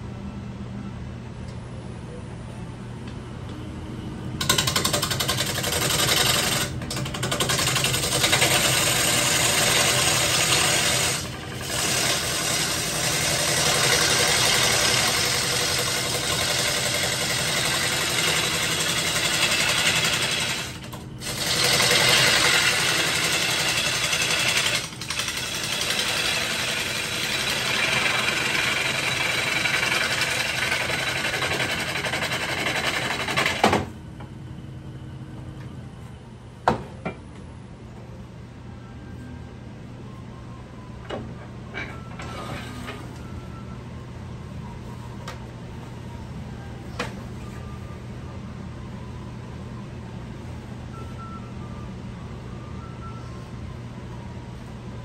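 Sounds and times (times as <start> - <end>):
wood lathe humming: 4.4 - 33.6.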